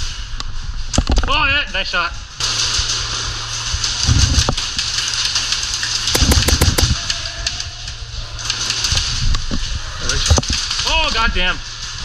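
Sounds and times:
airsoft rifle shots: 0:06.2 - 0:07.1.

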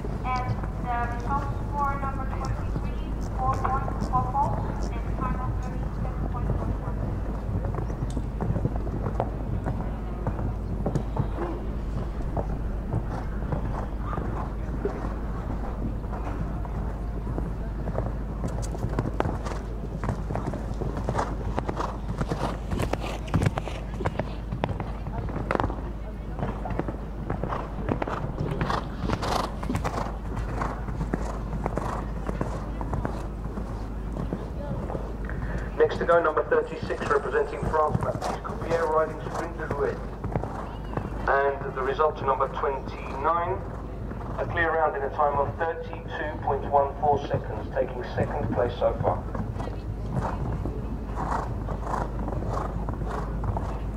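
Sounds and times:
horse hoofbeats on sand: 0:00.0 - 0:35.2, 0:35.8 - 0:53.9
low rumble: 0:00.0 - 0:41.8.

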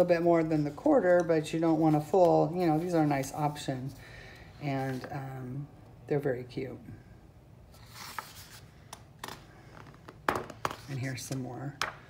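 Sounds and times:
paper page rustling: 0:07.7 - 0:08.7.

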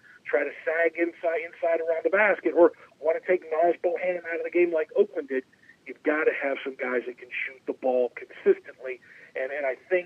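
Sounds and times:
person talking over phone: 0:00.2 - 0:10.0.

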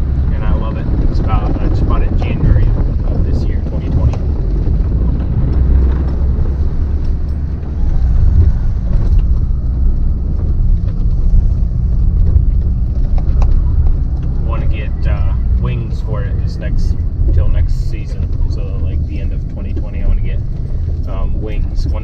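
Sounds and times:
truck engine rumbling under load: 0:00.0 - 0:22.0.

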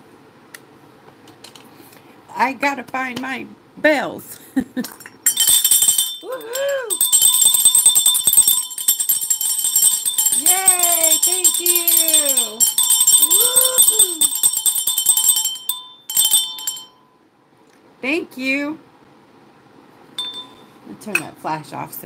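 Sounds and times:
jingle bells shaken: 0:05.2 - 0:16.9.

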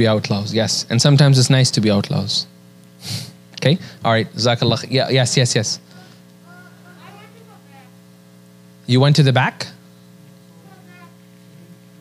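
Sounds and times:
electrical mains hum: 0:00.0 - 0:12.0
loud close speech: 0:05.9 - 0:08.1.

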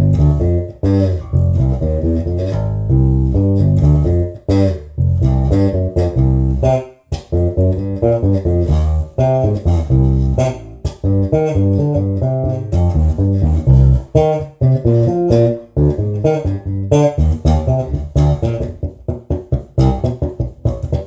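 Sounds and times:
fingerstyle electric bass guitar: 0:00.0 - 0:21.0.

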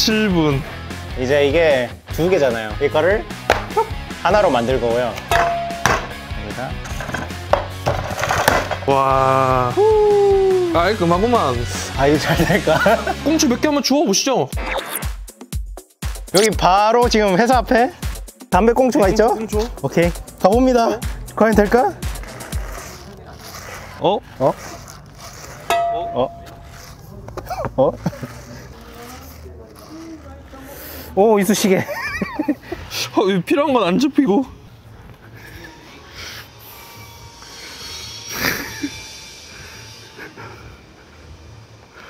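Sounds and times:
faint street background: 0:00.0 - 0:14.5, 0:16.3 - 0:42.0
background music: 0:00.0 - 0:27.2
plastic roller scraping asphalt: 0:20.8 - 0:32.5.

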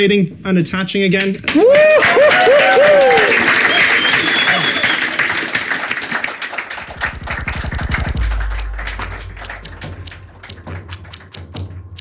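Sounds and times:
audience applause: 0:01.5 - 0:11.2
deep bass tone: 0:06.8 - 0:11.0.

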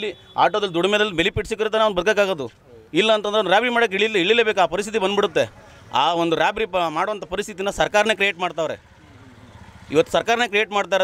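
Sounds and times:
man speaking: 0:00.0 - 0:08.8
low engine or traffic rumble: 0:02.3 - 0:11.0.

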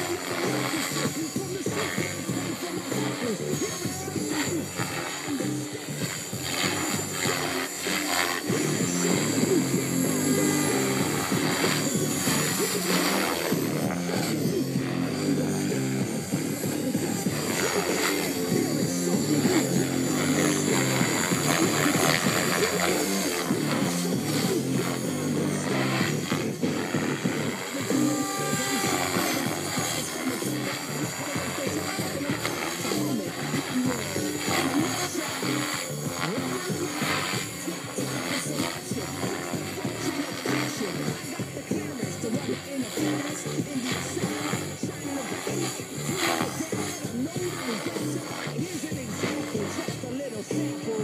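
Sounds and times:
background music with bass line: 0:00.0 - 0:51.0.

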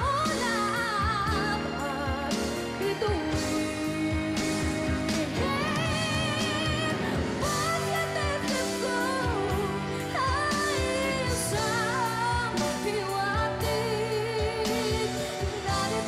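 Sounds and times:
band accompaniment with drum beat: 0:00.0 - 0:16.0
woman singing ballad with vibrato: 0:00.0 - 0:16.0.

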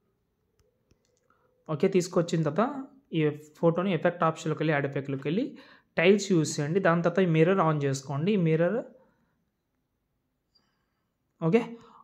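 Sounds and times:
soft clicks: 0:00.5 - 0:01.4.

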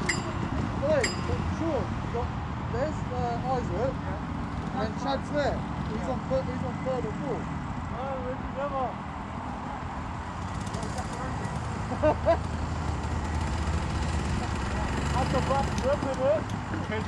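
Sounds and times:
go-kart engines idling: 0:00.0 - 0:02.2, 0:03.0 - 0:08.9, 0:09.6 - 0:17.0.

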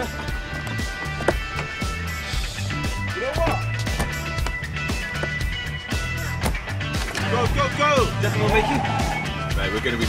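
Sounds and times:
film music with bass line: 0:00.0 - 0:10.0.

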